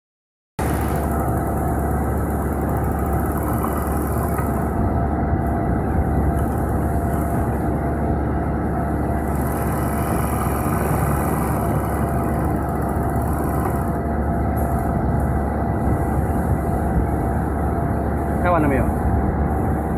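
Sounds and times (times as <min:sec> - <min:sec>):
sewing machine running fast: 0:00.6 - 0:04.8, 0:09.2 - 0:14.0.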